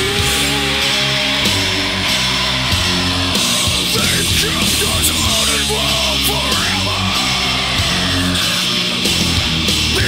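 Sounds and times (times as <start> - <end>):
distorted electric guitar riff: 0.0 - 10.0
heavy metal music: 0.0 - 10.0.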